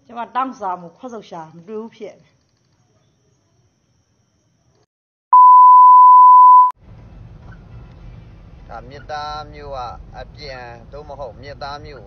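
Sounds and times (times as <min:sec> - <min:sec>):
steady test tone: 0:05.4 - 0:06.7
low rumble of car noise: 0:06.8 - 0:12.0.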